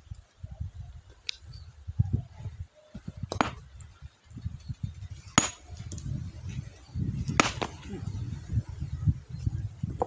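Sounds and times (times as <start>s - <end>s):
sledgehammer striking boulder: 3.2s - 3.7s, 5.3s - 5.7s, 7.3s - 7.8s
stone splitting: 5.3s - 6.0s, 7.3s - 7.9s.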